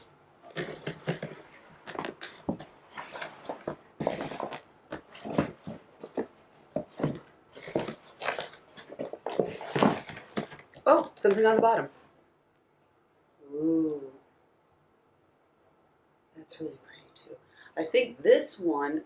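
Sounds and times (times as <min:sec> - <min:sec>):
rolls rustling in plastic bin: 0:00.5 - 0:11.9.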